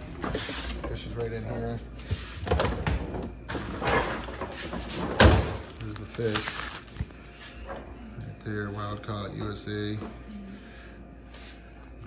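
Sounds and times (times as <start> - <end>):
refrigerator drawer sliding: 2.4 - 6.5.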